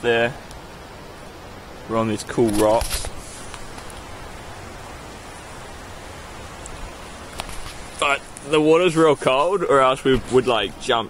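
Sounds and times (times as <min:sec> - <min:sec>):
river water flowing: 0:00.0 - 0:11.0
faint clicks: 0:00.4 - 0:00.6, 0:06.6 - 0:08.5.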